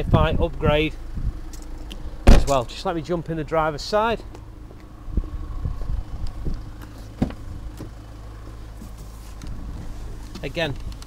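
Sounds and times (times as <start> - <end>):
steady low hum: 0.0 - 11.0
knocks and rustles climbing into car: 1.5 - 2.7, 5.7 - 11.0.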